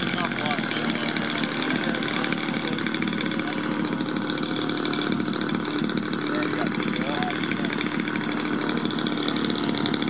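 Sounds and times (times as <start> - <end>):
model airplane engine buzzing: 0.0 - 10.0.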